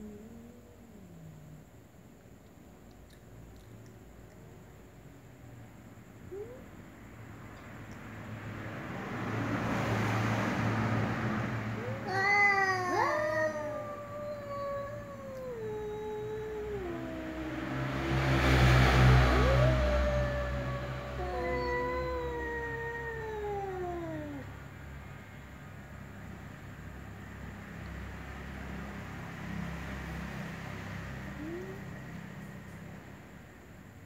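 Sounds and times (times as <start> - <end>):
cat yowling: 11.7 - 24.6, 31.4 - 31.9.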